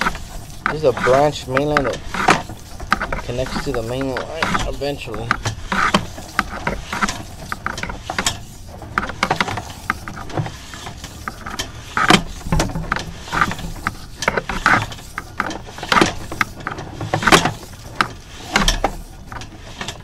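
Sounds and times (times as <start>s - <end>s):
cable and reel clicking and knocking: 0.0s - 20.0s.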